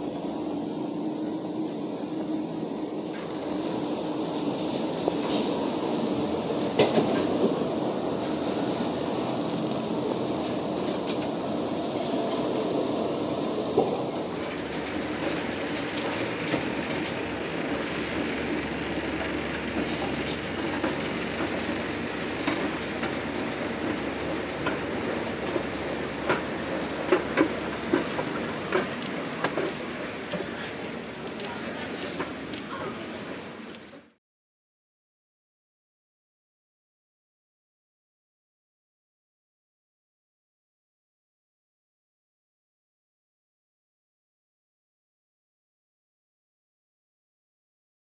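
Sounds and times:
monorail train rumbling past: 0.0s - 34.2s.

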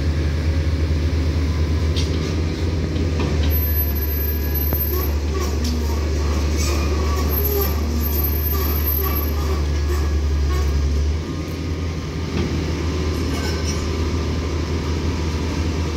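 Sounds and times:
diesel train engine drone: 0.0s - 15.9s.

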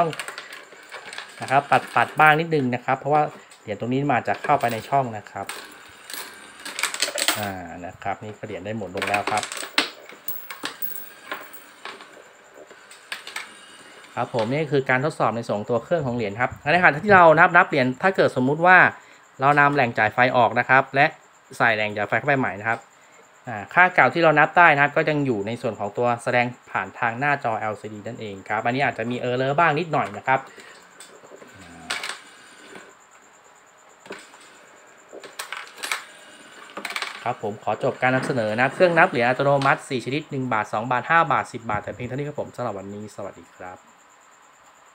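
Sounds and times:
coins clicking on plastic hopper: 0.0s - 2.6s, 4.3s - 7.6s, 8.9s - 12.1s, 31.8s - 32.3s.

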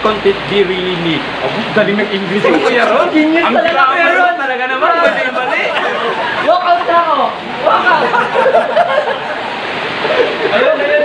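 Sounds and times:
men talking: 0.0s - 11.0s
men laughing: 2.2s - 11.0s.

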